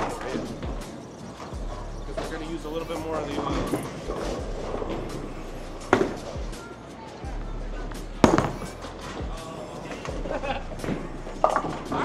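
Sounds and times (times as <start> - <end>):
bowling ball rolling: 0.0 - 6.6, 8.2 - 9.2, 10.0 - 12.0
background music: 0.0 - 12.0
chatter: 0.0 - 12.0
bowling ball thud on lane: 8.2 - 8.7
bowling pins knocking: 8.2 - 8.8.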